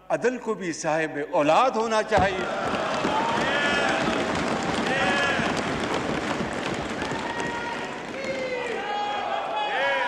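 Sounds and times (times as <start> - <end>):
hall background noise: 1.4 - 10.0.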